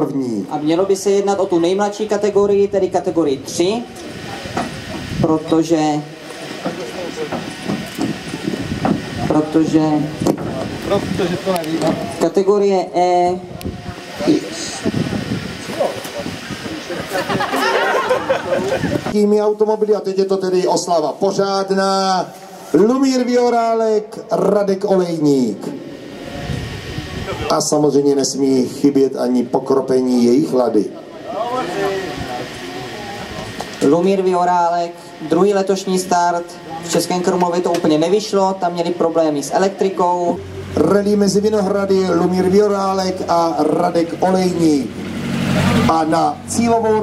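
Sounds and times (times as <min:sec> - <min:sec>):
man speaking: 0:00.0 - 0:04.3, 0:09.3 - 0:10.2, 0:14.2 - 0:14.9, 0:19.1 - 0:25.8, 0:27.3 - 0:44.9, 0:45.7 - 0:47.0
people talking: 0:00.0 - 0:04.6, 0:05.2 - 0:08.1, 0:09.2 - 0:47.0
background hiss: 0:00.0 - 0:47.0
steady background noise: 0:00.0 - 0:47.0.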